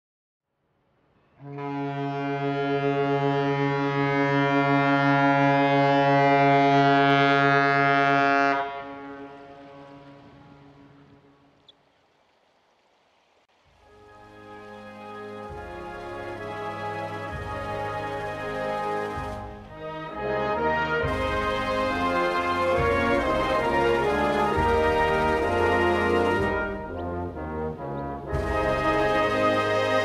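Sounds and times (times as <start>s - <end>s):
music: 0.9s - 11.5s, 13.7s - 30.0s
ship's horn blast: 1.4s - 11.5s, 13.9s - 30.0s.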